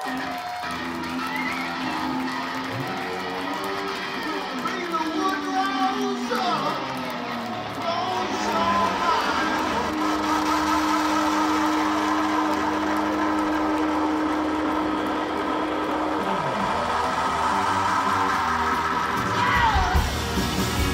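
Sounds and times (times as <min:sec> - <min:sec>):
live rock band playing loud: 0:18.3 - 0:20.9.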